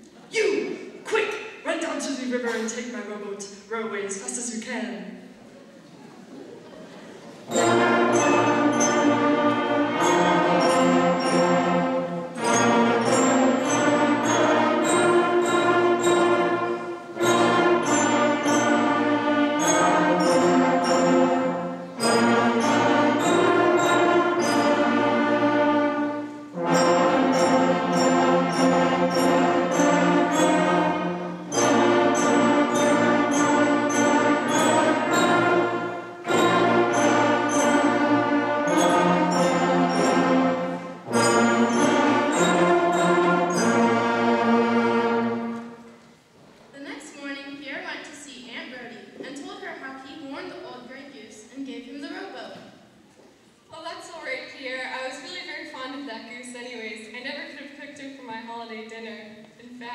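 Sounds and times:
concert band playing chords: 7.2s - 45.8s.

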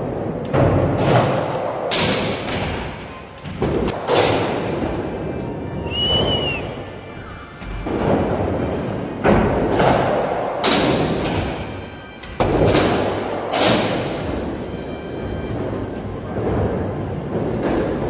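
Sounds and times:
skateboard rolling: 0.0s - 18.0s.

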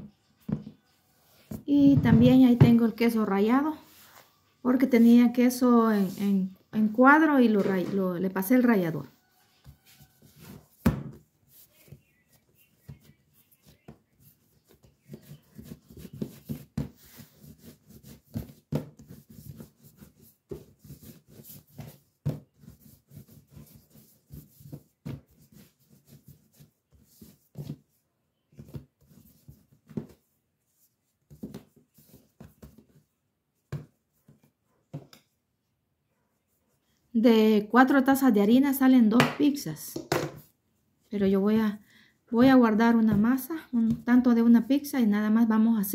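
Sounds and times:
dough kneaded on countertop: 0.0s - 45.9s.

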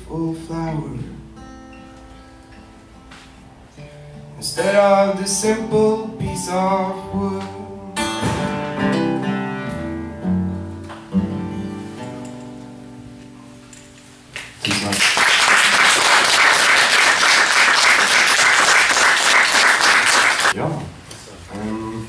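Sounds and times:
acoustic guitar playing: 0.0s - 14.6s
audience clapping: 14.3s - 20.6s.

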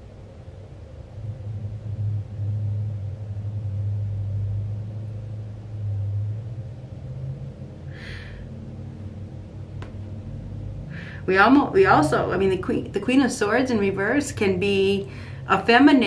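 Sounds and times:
low rumble: 0.0s - 16.0s.

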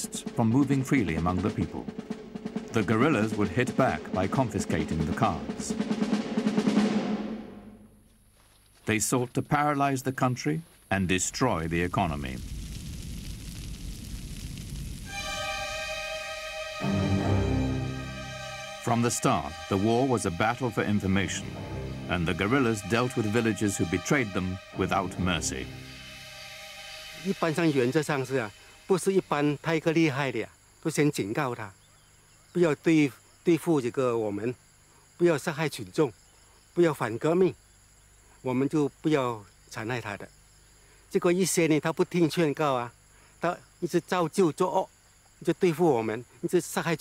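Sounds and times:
low rumbling noise with crackle: 10.7s - 15.5s
faint high-pitched whine: 22.2s - 46.2s.

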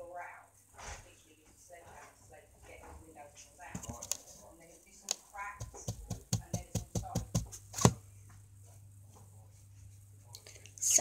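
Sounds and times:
sharp clicks and taps: 5.1s - 8.0s.

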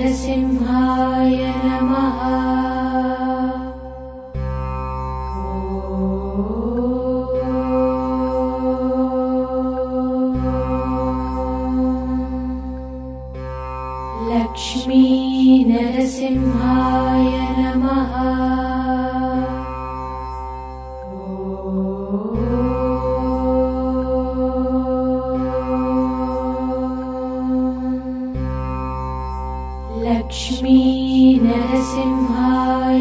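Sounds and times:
devotional chant: 0.0s - 4.7s, 5.4s - 13.4s, 14.2s - 20.2s, 21.0s - 28.7s, 29.9s - 33.0s.

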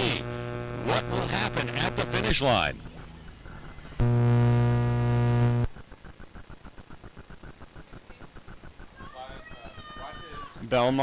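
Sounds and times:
fast regular ticking: 0.0s - 11.0s.

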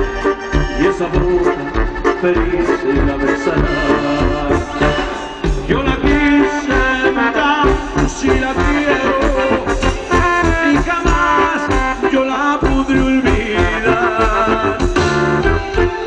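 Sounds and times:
live band music over speakers: 0.0s - 16.0s.

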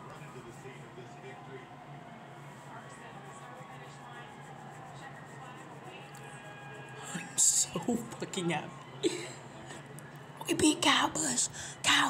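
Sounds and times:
faint television broadcast: 0.0s - 12.0s
indistinct murmur: 0.0s - 12.0s.

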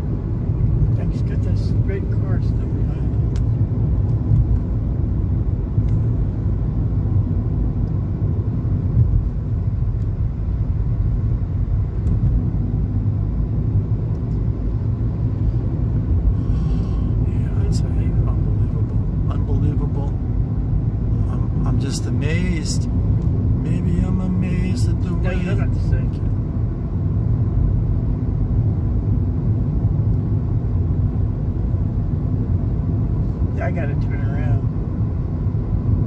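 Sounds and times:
car tyres and engine rumbling: 0.0s - 36.0s.

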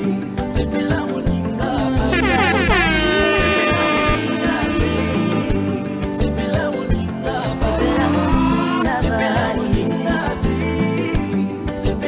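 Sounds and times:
music playing: 0.0s - 12.0s
loud horn blast: 2.0s - 6.2s, 7.8s - 8.9s
steady bass line: 2.0s - 9.2s.

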